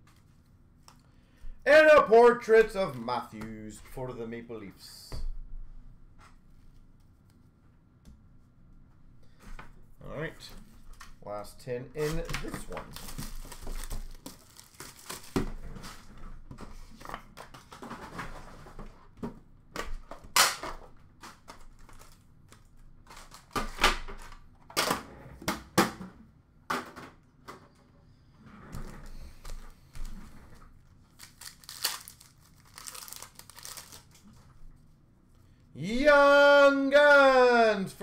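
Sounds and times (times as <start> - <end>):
wrappers rustling and ripping: 12.0 - 15.4, 31.0 - 34.5.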